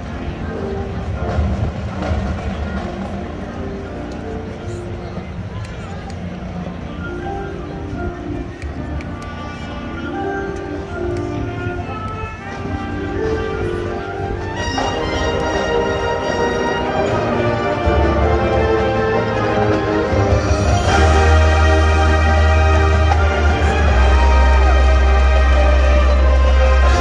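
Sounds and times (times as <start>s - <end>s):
marching band playing: 0.0s - 5.4s, 9.1s - 27.0s.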